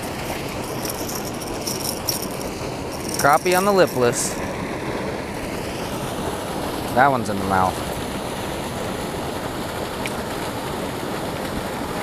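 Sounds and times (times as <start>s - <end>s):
fishing reel rattling: 0.0s - 4.4s
water rushing from spillway: 0.0s - 12.0s.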